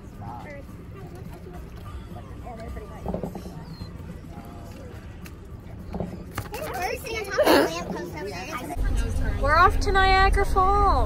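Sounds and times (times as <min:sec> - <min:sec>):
faint voices: 0:00.0 - 0:11.0
low outdoor rumble: 0:00.0 - 0:11.0.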